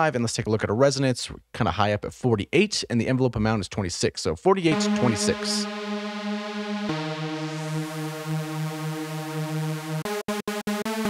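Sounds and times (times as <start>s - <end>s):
synthesizer notes: 4.7s - 11.0s.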